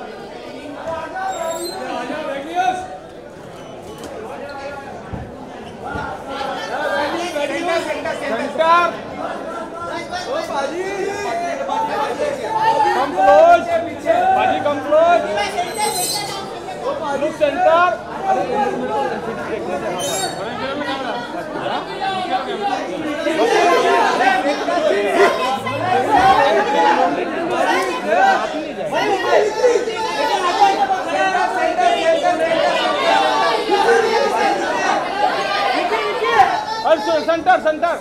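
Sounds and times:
crowd of people shouting: 5.9s - 38.0s.

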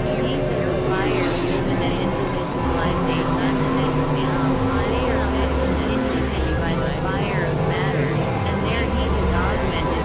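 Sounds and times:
low hum: 0.0s - 10.0s
synthesizer drone tones: 0.0s - 10.0s.

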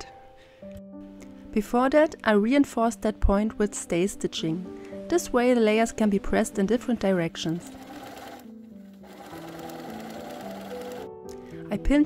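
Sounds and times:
soft piano music: 0.0s - 12.0s
sewing machine stitching: 7.6s - 11.1s.

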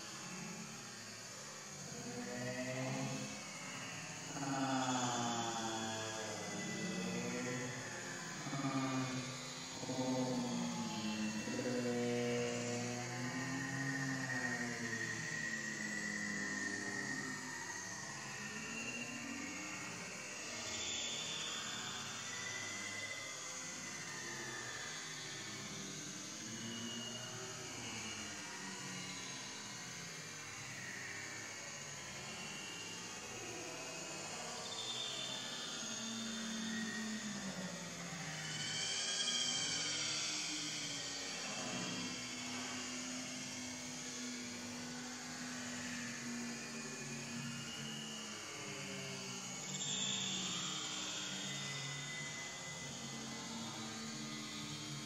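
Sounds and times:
steady outdoor hiss: 0.0s - 55.0s.

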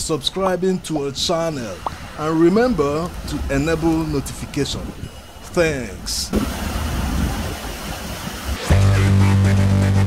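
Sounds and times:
wind: 0.0s - 9.7s
waves at the shore: 0.4s - 9.0s
electronic music with deep bass: 8.6s - 10.0s.

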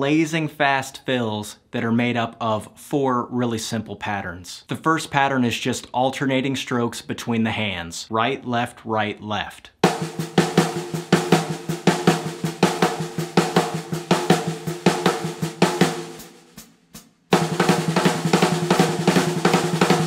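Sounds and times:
snare drum rapid strokes: 9.8s - 20.0s.

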